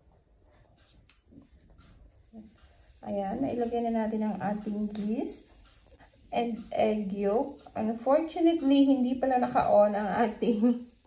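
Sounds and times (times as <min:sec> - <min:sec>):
faint light ticks: 0:00.8 - 0:03.0, 0:03.6 - 0:09.7.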